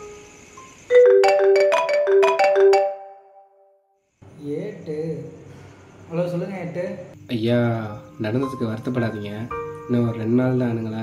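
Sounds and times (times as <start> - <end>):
marimba-like phone ringtone: 0.9 - 3.6.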